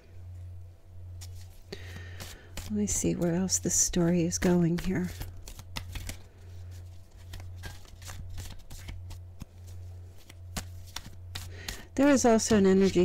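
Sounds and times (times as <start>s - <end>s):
steady low hum: 0.0s - 13.0s
cards being shuffled: 1.2s - 13.0s.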